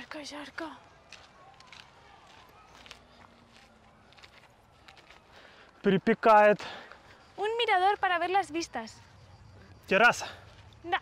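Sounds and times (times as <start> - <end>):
footsteps on dirt and gravel: 0.0 - 9.1.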